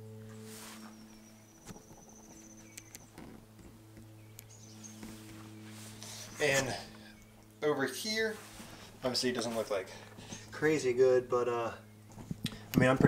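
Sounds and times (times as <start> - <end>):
high warbling insect-like trill: 0.0 - 8.3
steady low hum: 0.0 - 13.0.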